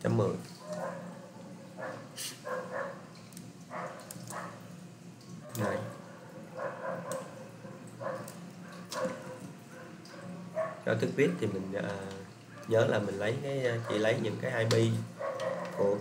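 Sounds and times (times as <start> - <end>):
animal yelping: 15.2 - 15.8.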